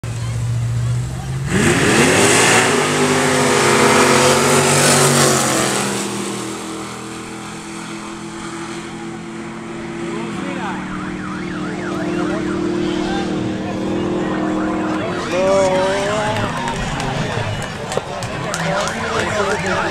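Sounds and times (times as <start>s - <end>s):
racing car engines accelerating: 0.0s - 19.9s
voices: 7.2s - 19.9s.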